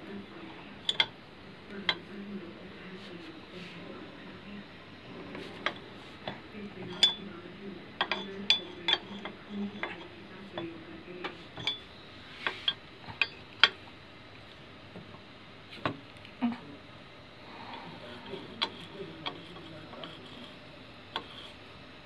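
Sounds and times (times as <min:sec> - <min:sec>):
faint low hum: 0:00.0 - 0:22.0
spanner clinking on metal: 0:00.8 - 0:01.1, 0:06.9 - 0:07.3, 0:08.0 - 0:10.0, 0:11.6 - 0:11.9.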